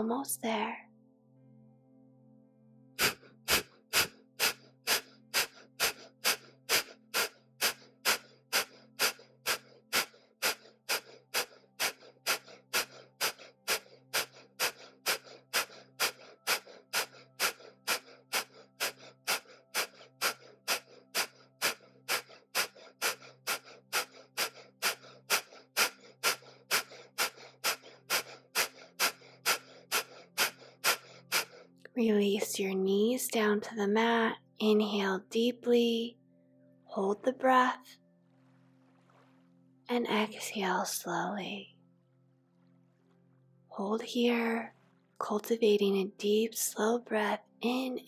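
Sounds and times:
rapid forceful nasal exhalations: 3.0 - 31.8.

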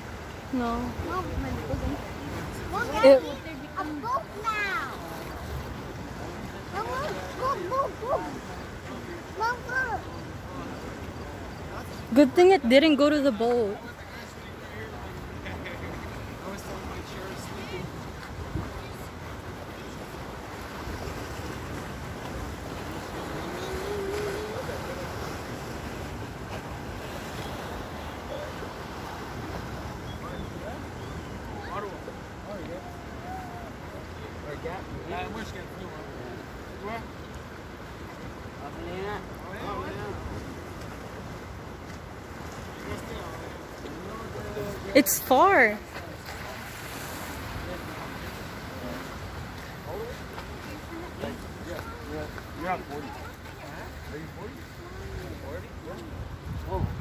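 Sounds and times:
faint distant voices: 0.0 - 57.0
open water ambience: 0.0 - 57.0
wind: 0.0 - 57.0
wind noise on microphone: 56.0 - 57.0.

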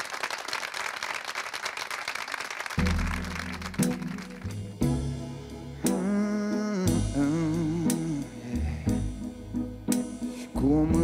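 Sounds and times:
audience applause: 0.0 - 4.7
live band playing: 2.8 - 11.0.

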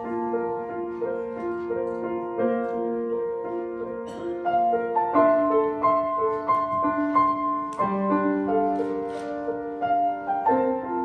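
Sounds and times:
slow piano piece: 0.0 - 11.0.

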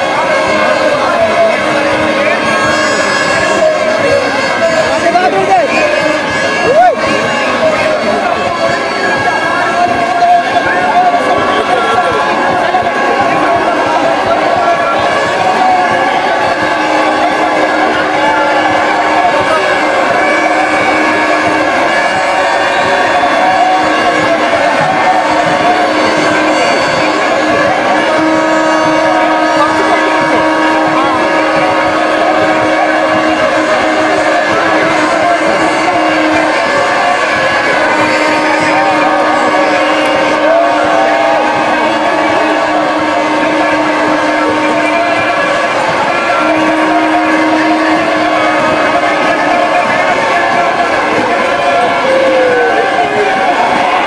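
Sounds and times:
hubbub of many voices: 0.0 - 54.0.

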